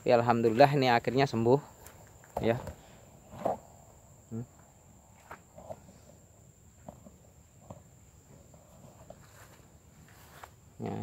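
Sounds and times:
small rustles: 0:07.6 - 0:10.6.

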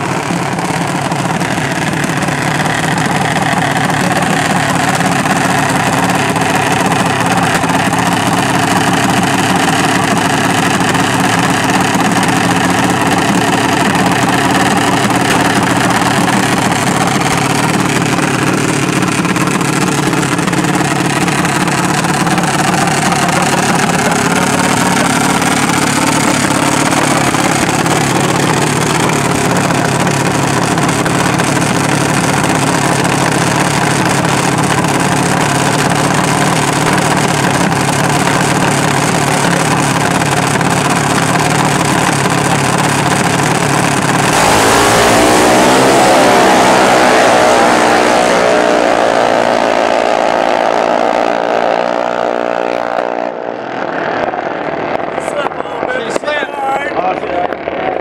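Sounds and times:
single-cylinder engines idling: 0:00.0 - 0:45.0.

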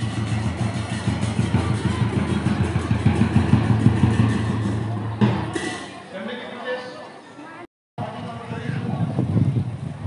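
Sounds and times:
vehicle engine rumbling: 0:00.0 - 0:06.0
music playing: 0:00.0 - 0:06.1.

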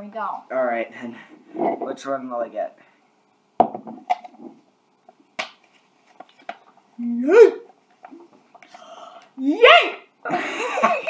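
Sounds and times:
ceramic mug clunk on wooden table: 0:03.6 - 0:04.0.

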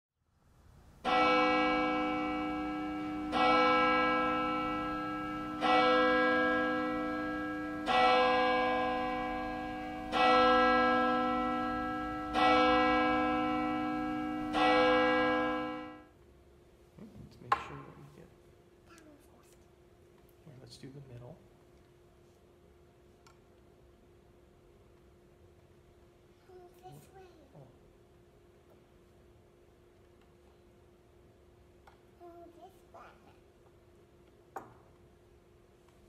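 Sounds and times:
church bell tolling: 0:01.0 - 0:16.1.

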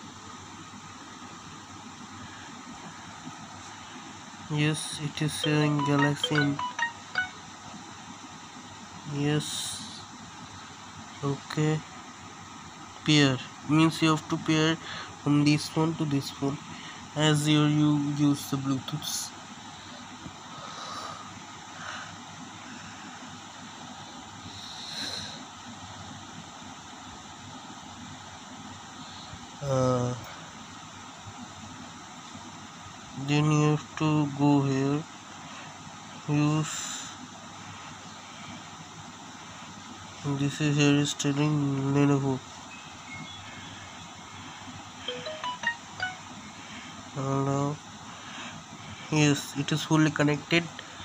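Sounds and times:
steady background noise: 0:00.0 - 0:51.0
smartphone notification chime: 0:05.4 - 0:07.4, 0:45.1 - 0:46.4.

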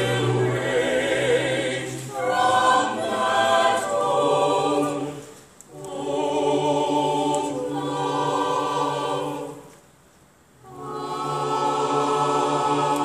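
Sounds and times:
chorus singing held chords: 0:00.0 - 0:09.9, 0:10.6 - 0:13.0.

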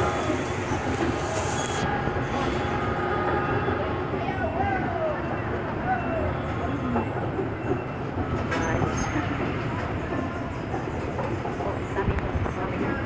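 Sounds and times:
carousel machinery rumbling: 0:00.0 - 0:13.0.

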